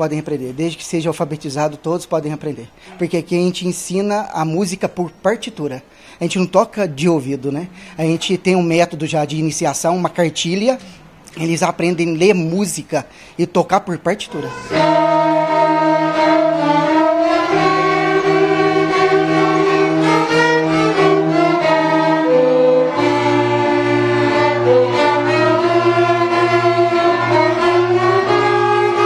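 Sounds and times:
violins playing slow piece: 7.0 - 9.0, 14.3 - 29.0.

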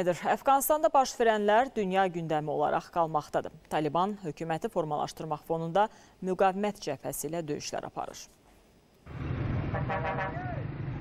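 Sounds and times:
traffic engines rumbling: 9.1 - 11.0.

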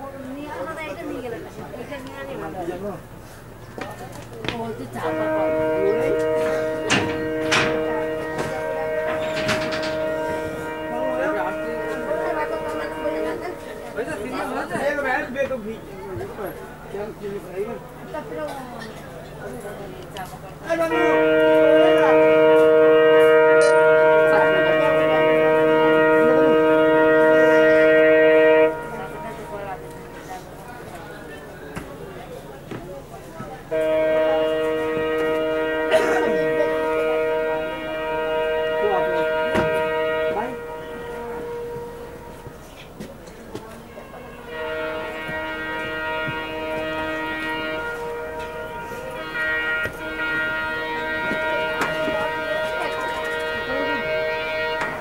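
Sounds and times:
moving train running noise: 0.0 - 55.0
locomotive air horn chord: 4.7 - 18.7, 19.4 - 31.5, 33.6 - 55.0.

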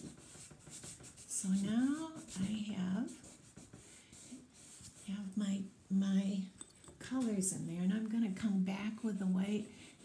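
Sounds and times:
finger rubbing chalk on paper: 0.0 - 5.2.

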